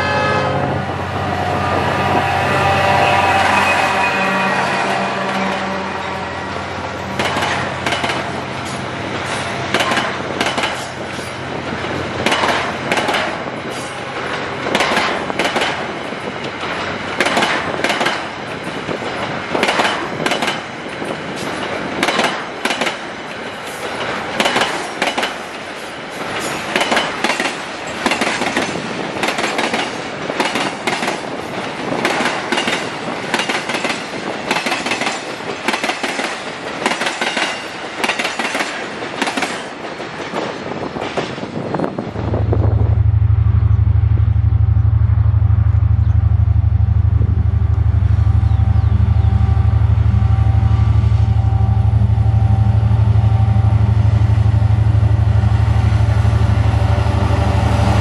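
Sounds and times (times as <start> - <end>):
diesel locomotive rumble: 0.0 - 58.0
train wheels clacking over rail joints: 7.1 - 42.0.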